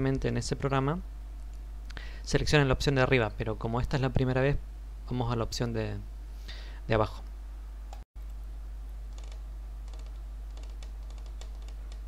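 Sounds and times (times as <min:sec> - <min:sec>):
low electrical hum: 0:00.0 - 0:12.0
computer keys clicking: 0:09.1 - 0:12.0.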